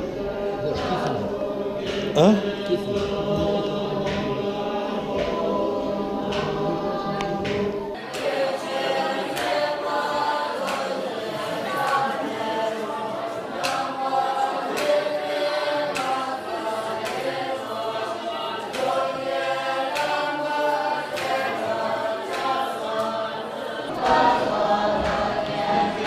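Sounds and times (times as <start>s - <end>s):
monks chanting in unison: 0.0s - 26.0s.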